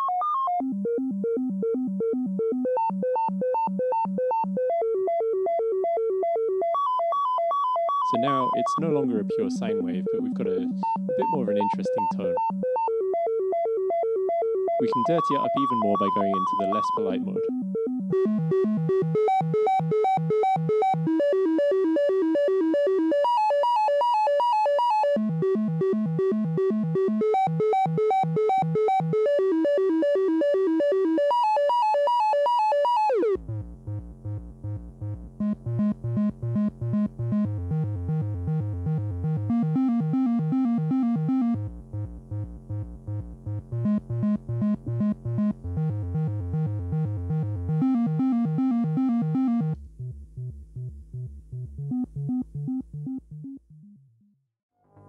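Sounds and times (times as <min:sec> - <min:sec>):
synth filter stepped note sequence: 0:08.0 - 0:12.8, 0:14.8 - 0:23.4, 0:24.8 - 0:54.2.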